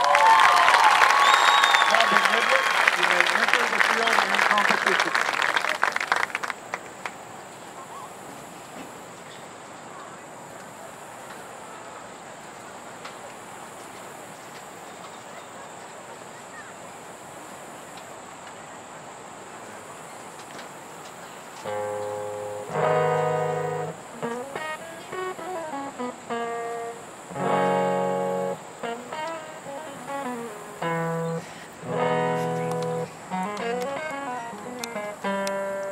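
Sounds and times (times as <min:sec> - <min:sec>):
open-air hush: 0:00.0 - 0:35.9
acoustic guitar solo: 0:21.6 - 0:35.9.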